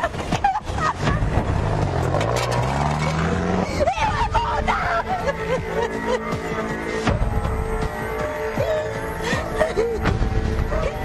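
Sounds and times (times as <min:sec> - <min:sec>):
car engine accelerating: 0:00.8 - 0:04.1.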